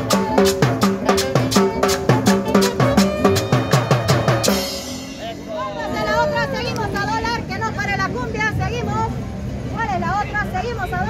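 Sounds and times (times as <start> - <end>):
crowd chatter: 0.0 - 11.0
low street rumble: 0.0 - 11.0
people talking: 5.2 - 11.0.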